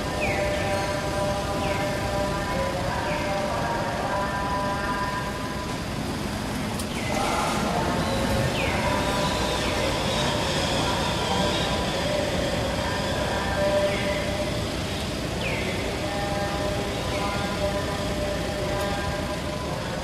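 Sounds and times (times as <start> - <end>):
outdoor background noise: 0.0 - 20.0.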